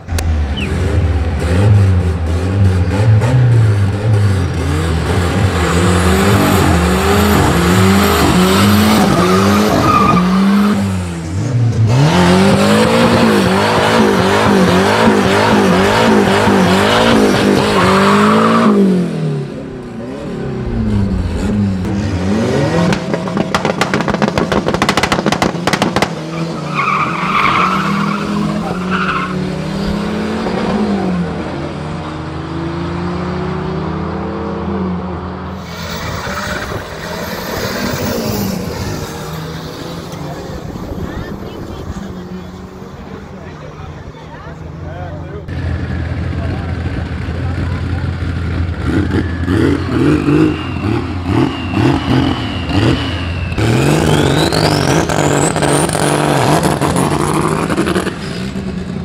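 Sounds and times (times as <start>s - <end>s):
race car engines revving: 0.0s - 59.0s
tire squeal: 0.4s - 0.8s, 5.3s - 10.9s, 15.5s - 19.1s, 26.2s - 30.7s, 35.5s - 42.8s, 48.8s - 58.4s.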